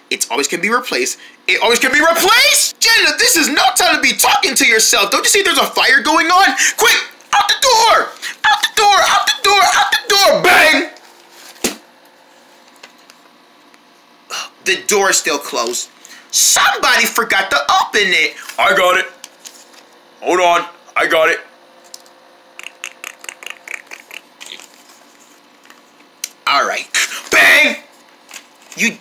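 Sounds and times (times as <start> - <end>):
paper and plastic crackling: 23.2 - 26.0, 28.0 - 28.9.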